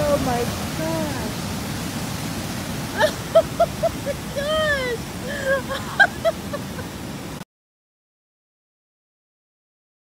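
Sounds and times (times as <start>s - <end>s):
surf crashing on beach: 0.0s - 7.4s
laugh-like bursts: 2.9s - 7.0s.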